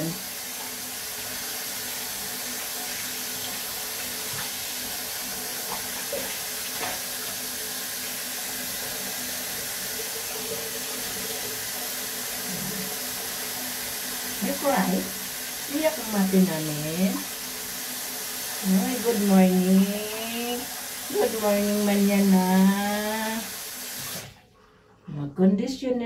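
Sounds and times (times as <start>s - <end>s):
tap water running into basin: 0.0s - 25.1s.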